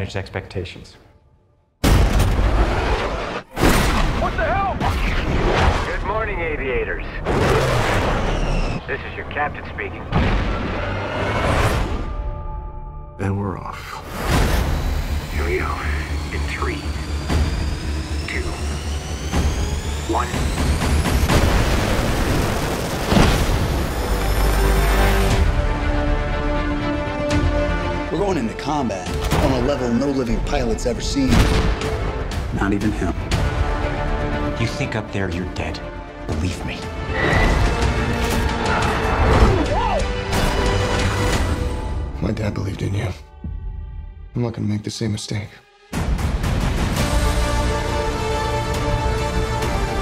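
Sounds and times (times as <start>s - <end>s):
trailer music drone: 6.9s - 44.8s, 45.7s - 50.0s.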